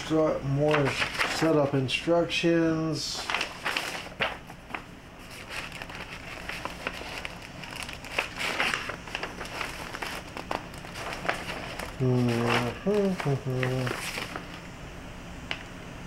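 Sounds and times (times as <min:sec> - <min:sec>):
paper and plastic rustling: 0:00.0 - 0:02.0, 0:03.0 - 0:14.7.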